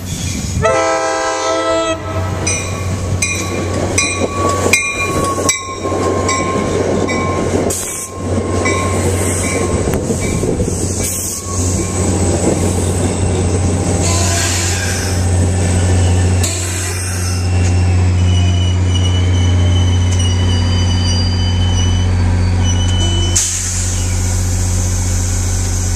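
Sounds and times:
diesel locomotive drone: 0.0s - 25.9s
train wheels clicking over rail joints: 2.4s - 17.9s
brakes squealing: 2.4s - 25.9s.

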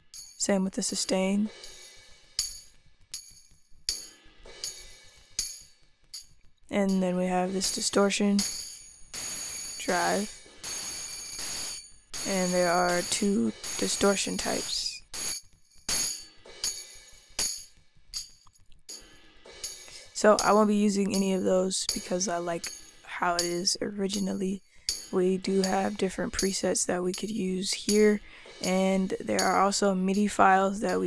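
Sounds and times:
tambourine hits: 1.5s - 6.4s, 7.4s - 20.6s, 21.9s - 26.0s.

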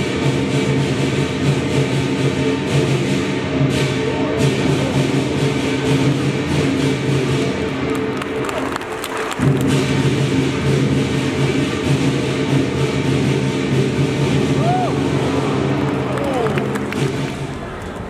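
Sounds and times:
gongs and cymbals clashing: 0.0s - 7.9s, 9.4s - 16.1s
large drum beating: 0.0s - 17.8s.

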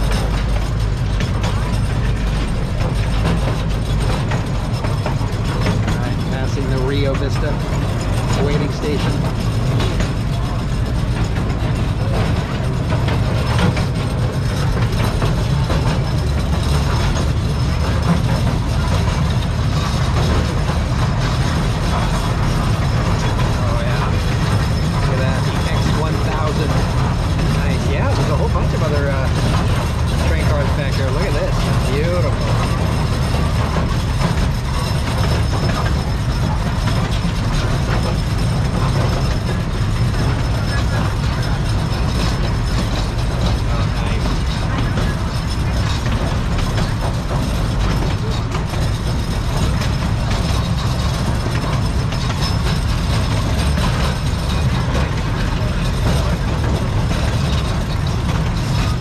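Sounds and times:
cars and wheels rattling on rails: 0.0s - 59.0s
small train rumbling on track: 0.0s - 59.0s.

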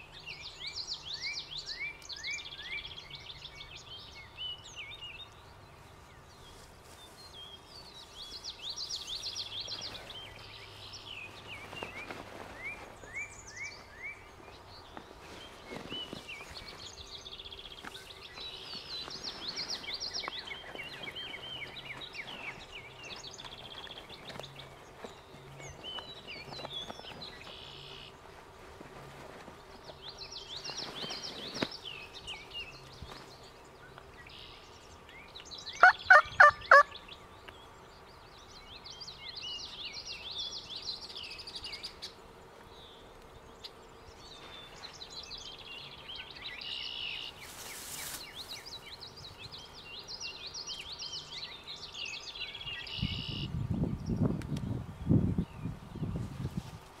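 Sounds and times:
songbirds singing: 0.0s - 57.0s
turkey calling: 35.8s - 36.9s.

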